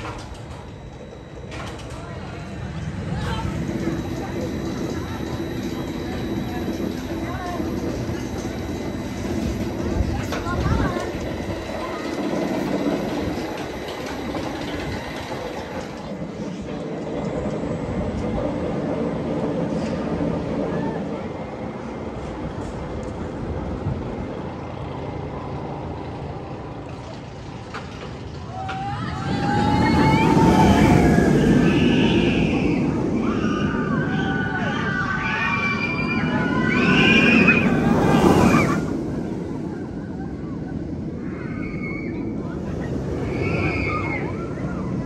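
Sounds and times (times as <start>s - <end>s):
roller coaster rumbling on track: 0.0s - 45.0s
riders screaming: 28.5s - 39.0s.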